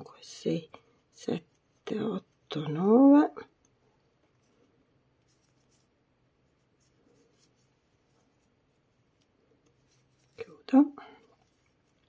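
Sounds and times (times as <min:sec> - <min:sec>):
crochet hook ticks and rustles: 0:00.0 - 0:04.6, 0:06.5 - 0:12.0.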